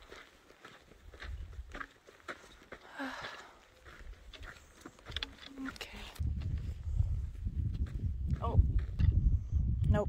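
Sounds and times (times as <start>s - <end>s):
footsteps crunching on rocky dirt: 0.0s - 9.1s.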